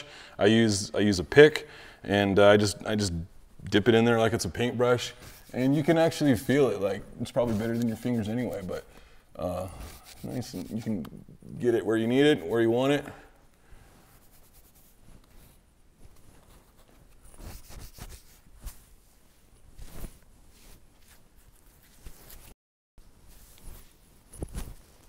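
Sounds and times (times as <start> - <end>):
hands rubbing beard: 3.7 - 8.9, 9.6 - 13.1, 13.9 - 22.5.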